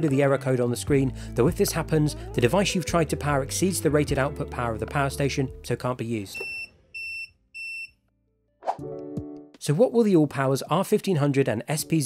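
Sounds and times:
music: 0:00.0 - 0:06.1, 0:08.7 - 0:09.8, 0:11.7 - 0:12.0
short high alarm beeps: 0:06.4 - 0:07.9.

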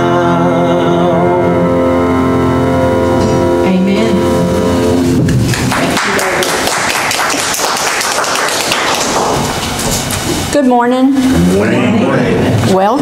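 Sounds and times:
keyboard chord: 0:00.0 - 0:06.2.

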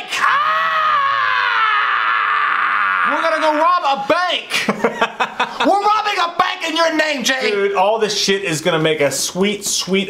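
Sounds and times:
man screaming: 0:00.0 - 0:04.3.

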